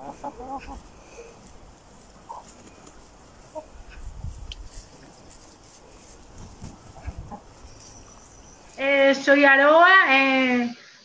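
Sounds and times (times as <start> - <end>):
hens clucking: 0.0 - 8.8.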